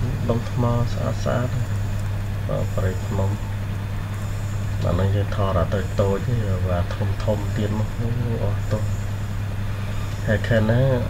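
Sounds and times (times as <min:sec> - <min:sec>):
steady low hum: 0:00.0 - 0:11.0
person speaking: 0:02.5 - 0:03.6, 0:04.8 - 0:09.0.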